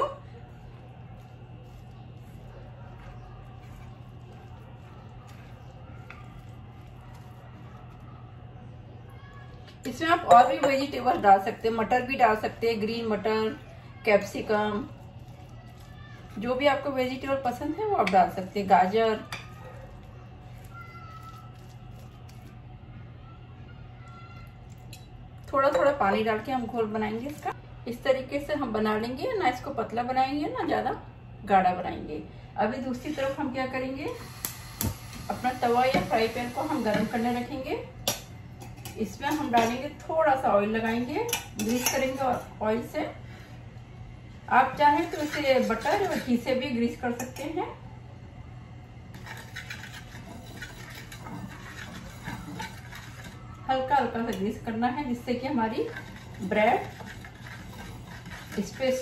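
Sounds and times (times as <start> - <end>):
spoon stirring batter in bowl: 0.2 - 8.9, 40.7 - 42.6, 44.7 - 47.6, 49.1 - 59.0
spoon scraping griddle: 35.3 - 40.0, 40.8 - 42.6, 44.7 - 47.5, 49.1 - 53.5, 55.3 - 59.0.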